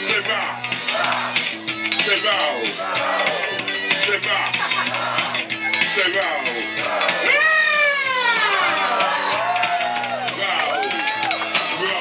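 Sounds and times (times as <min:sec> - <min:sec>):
swooping high synth tone: 0:07.2 - 0:09.3.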